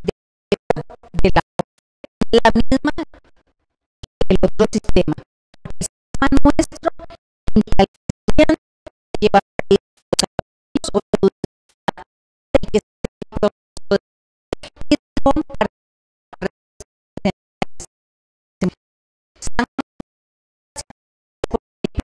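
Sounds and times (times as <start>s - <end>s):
woman speaking into microphone: 1.2s - 1.4s, 2.3s - 3.0s, 4.3s - 5.2s, 6.2s - 6.9s.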